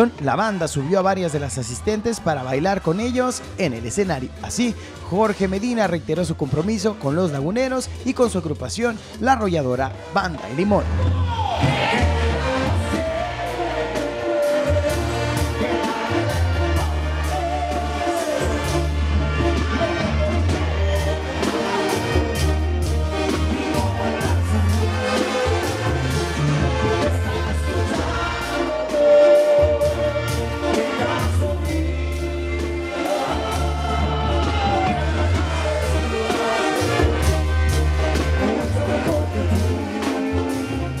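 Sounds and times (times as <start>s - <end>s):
brass band music: 0.0s - 41.0s
tuba bass: 0.0s - 41.0s.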